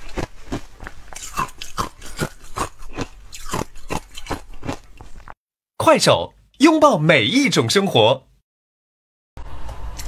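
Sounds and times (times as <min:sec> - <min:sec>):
person chewing crunchy ice: 0:00.0 - 0:05.4.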